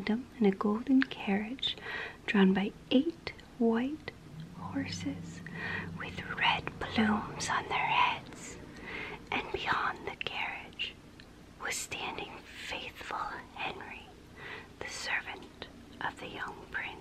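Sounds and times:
woman whispering: 0.9 - 8.6, 9.2 - 11.0, 11.6 - 14.1, 14.8 - 17.0.

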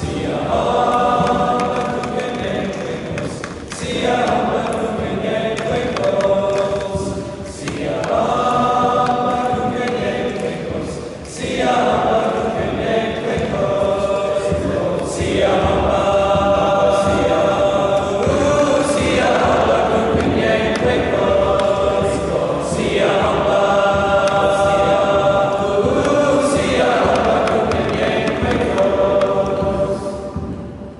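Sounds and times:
boys choir singing: 0.0 - 30.9.

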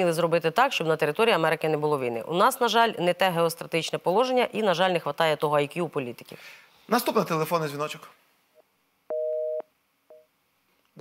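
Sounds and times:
telephone busy signal: 9.1 - 10.3.

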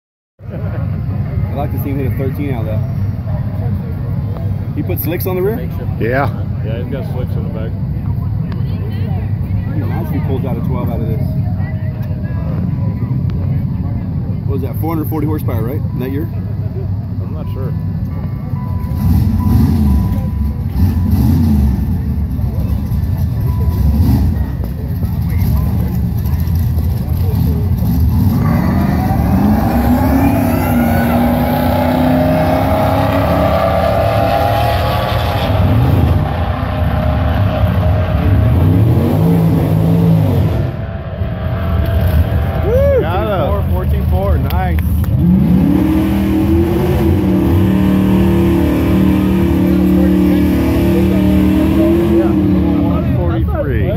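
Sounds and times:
engines rumbling: 0.4 - 53.9
cars accelerating hard: 18.8 - 53.9.

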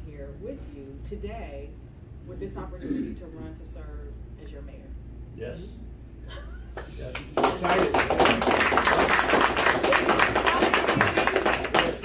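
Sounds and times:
people applauding: 6.8 - 12.0.

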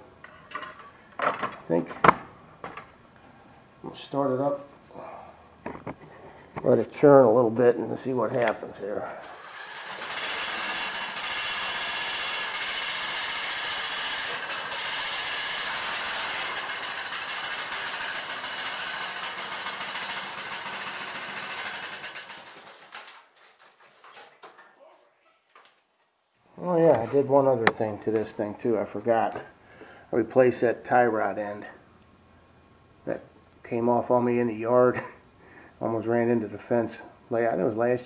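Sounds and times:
engine winding down: 9.2 - 23.0
mower engine starting and running: 9.2 - 24.6.

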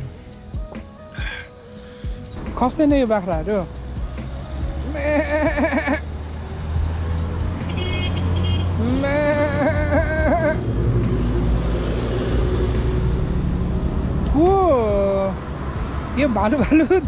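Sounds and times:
goats bleating: 4.9 - 6.1.

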